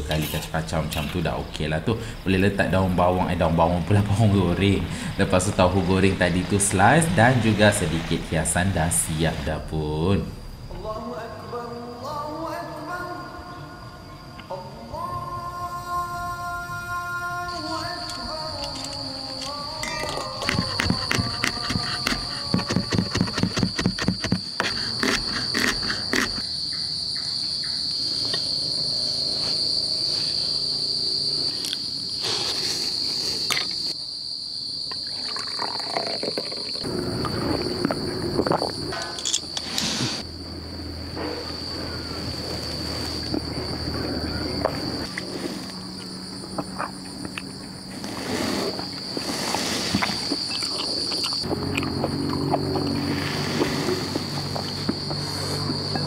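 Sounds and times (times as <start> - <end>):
crickets chirring: 0.0 - 56.0.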